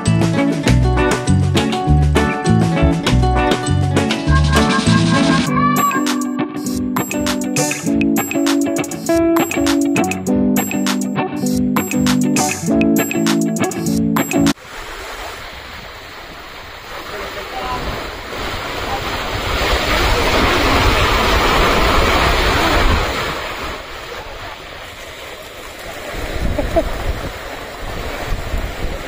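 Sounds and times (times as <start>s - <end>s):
surf breaking on a beach: 14.6s - 29.0s
wind buffeting microphone: 26.1s - 29.0s.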